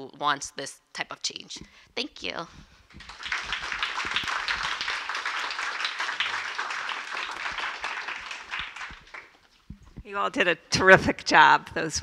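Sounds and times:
audience applause: 3.0s - 9.4s.

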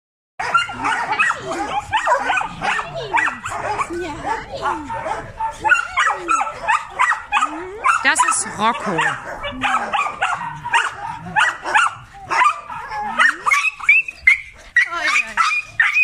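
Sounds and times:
dogs yapping and whining: 0.4s - 16.0s.

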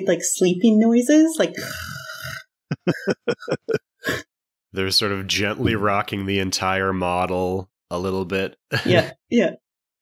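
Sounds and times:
person imitating snoring: 1.6s - 2.4s
short vocal bursts: 8.7s - 9.1s.

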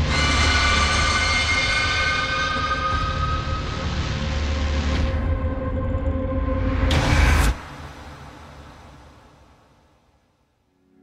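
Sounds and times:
dissonant high tones: 0.0s - 4.4s
low rumbling drone: 0.0s - 9.6s.

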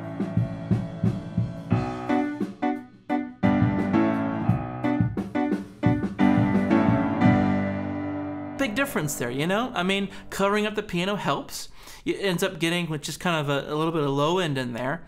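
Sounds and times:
upright piano playing: 0.0s - 11.4s.

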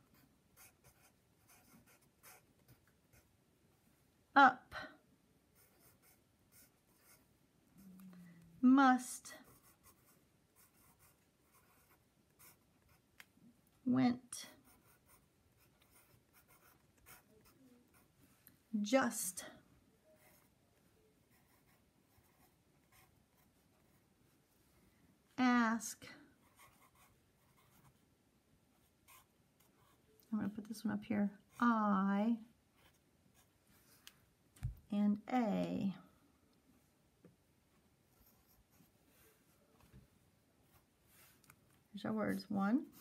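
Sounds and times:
pencil writing on paper: 0.0s - 3.3s, 5.6s - 7.2s, 9.4s - 13.0s, 14.5s - 18.1s, 21.3s - 24.0s, 26.4s - 28.0s.

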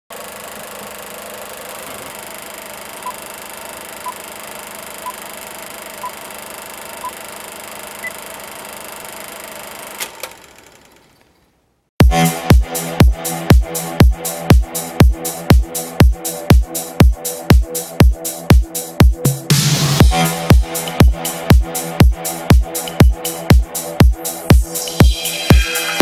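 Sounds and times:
old projector whirring: 0.1s - 11.4s.

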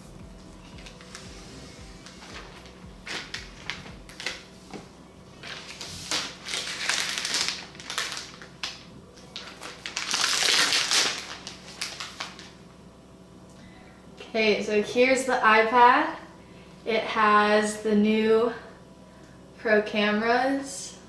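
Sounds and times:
plastic wrap rustling and crinkling: 0.6s - 12.6s.

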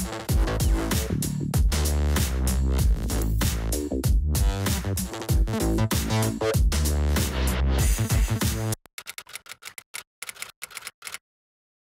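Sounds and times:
typing clicks: 8.8s - 11.2s.

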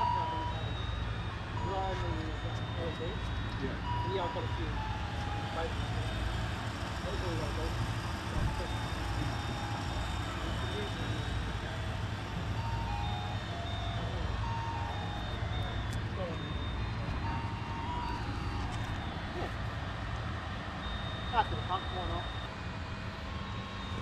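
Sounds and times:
electronic beeping tune: 0.0s - 6.3s, 12.5s - 19.7s, 20.8s - 22.6s, 23.4s - 24.0s
low outdoor rumble: 0.0s - 24.0s.

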